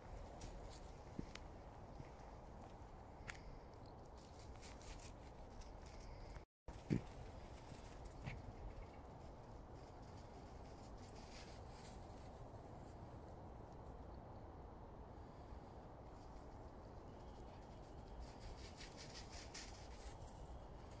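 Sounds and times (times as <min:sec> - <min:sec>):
crackling rustles: 0:00.0 - 0:02.3, 0:03.2 - 0:14.0, 0:16.1 - 0:21.0.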